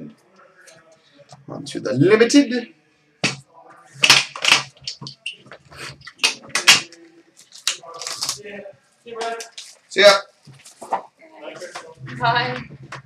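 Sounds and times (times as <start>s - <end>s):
plastic wrapping crinkling and tearing: 6.0s - 8.5s, 9.2s - 9.8s.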